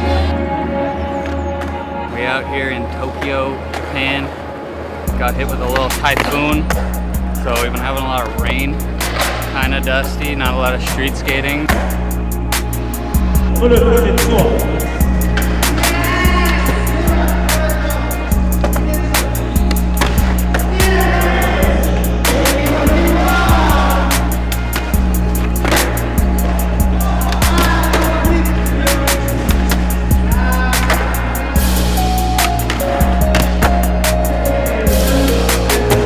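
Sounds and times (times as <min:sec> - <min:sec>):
skateboard wheels rolling on concrete: 0:01.2 - 0:13.5, 0:14.2 - 0:36.0
music with beat and bassline: 0:05.1 - 0:36.0.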